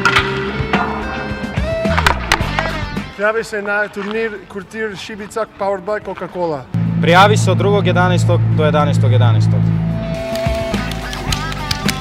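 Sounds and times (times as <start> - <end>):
sharp percussive hits: 0.0 - 3.0
background music with bass: 0.0 - 3.2, 6.7 - 12.0.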